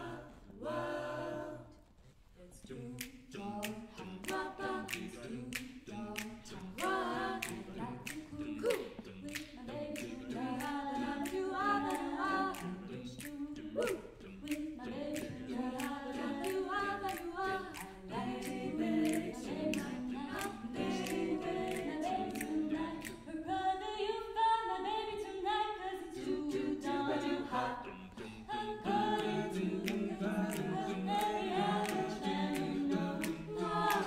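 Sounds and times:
close-harmony backing vocals: 0.0s - 34.0s
sharp clicks keeping time: 3.0s - 23.2s, 29.0s - 34.0s
woman singing lead: 4.2s - 27.7s.

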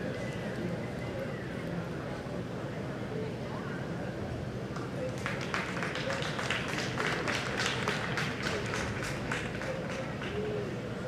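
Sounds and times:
audience applause: 5.2s - 10.3s.

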